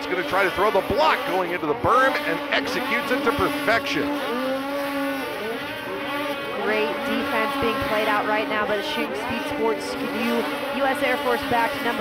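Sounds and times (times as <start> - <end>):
snowmobile engines revving: 0.0 - 12.0.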